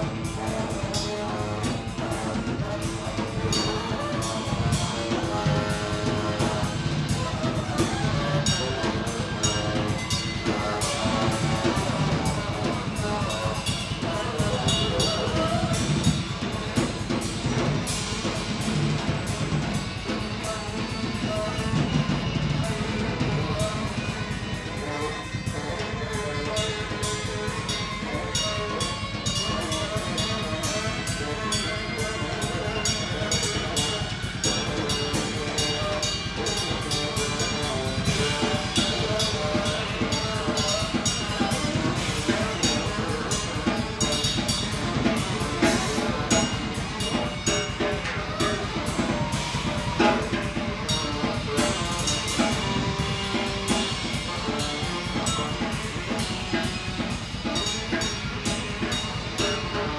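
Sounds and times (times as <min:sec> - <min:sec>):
cymbal strokes: 0:00.0 - 0:59.9
drum kit: 0:00.0 - 0:59.9
electric guitar: 0:00.0 - 0:59.9
live band playing: 0:00.0 - 0:59.9
saxophone: 0:00.0 - 0:59.9.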